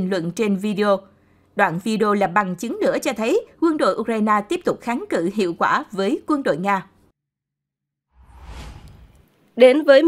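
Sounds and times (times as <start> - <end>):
low rumble: 8.1 - 9.3
whoosh sound effect: 8.1 - 9.3.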